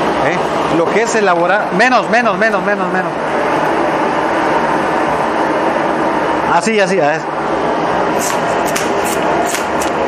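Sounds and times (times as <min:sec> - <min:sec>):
gas burner roaring: 0:00.0 - 0:10.0.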